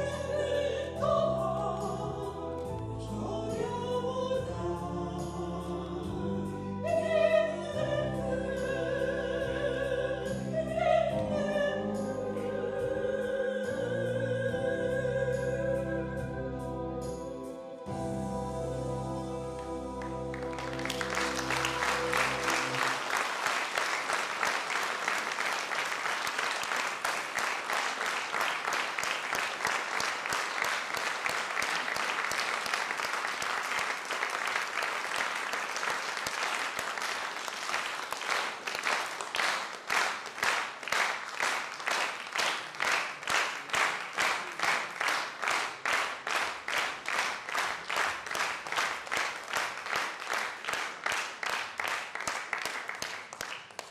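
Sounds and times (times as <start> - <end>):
audience applause: 20.0 - 53.9
rhythmic clapping in unison: 20.0 - 53.9.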